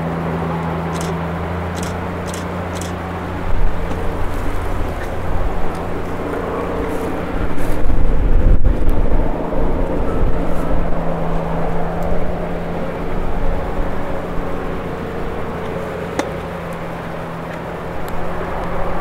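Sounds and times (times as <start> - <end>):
motor humming: 0.9 - 6.9.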